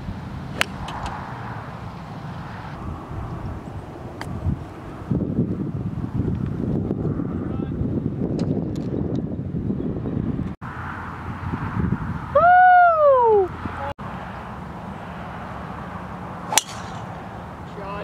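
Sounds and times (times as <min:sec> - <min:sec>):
wind rumbling on microphone: 0:00.0 - 0:18.0
golf driver striking ball: 0:16.5 - 0:17.2.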